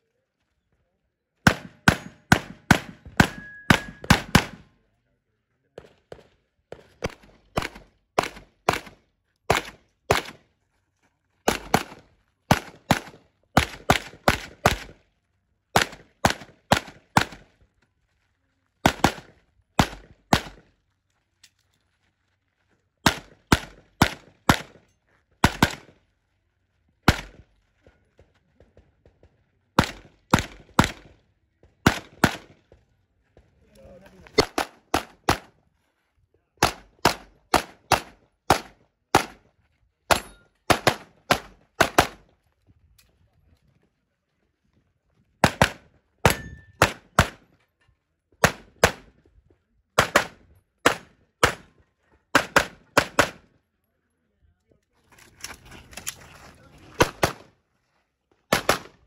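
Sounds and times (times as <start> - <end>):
handgun shots: 1.5 - 4.6, 58.5 - 59.0.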